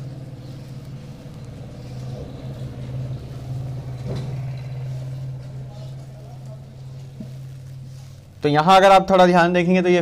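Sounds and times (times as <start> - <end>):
marker scratching on whiteboard: 0.0 - 3.8, 4.8 - 8.3
low mechanical hum: 0.0 - 10.0.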